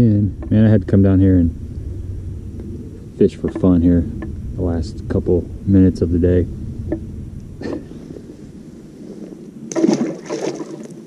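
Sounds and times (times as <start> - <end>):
fish splashing in water: 9.7 - 11.0.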